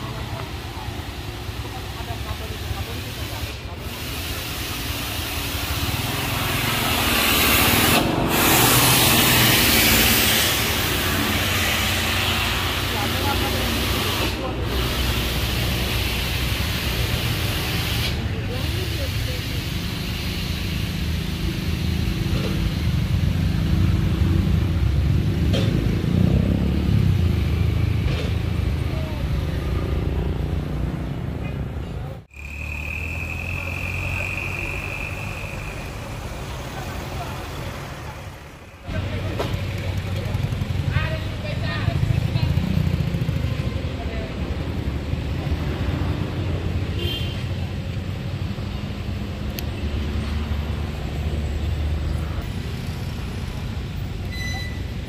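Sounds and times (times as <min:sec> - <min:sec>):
air hissing: 0:02.4 - 0:24.4, 0:32.3 - 0:36.8.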